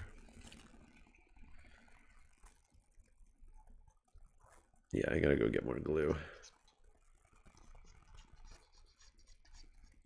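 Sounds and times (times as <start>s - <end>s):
glue applicator scratching plastic: 6.4s - 10.0s.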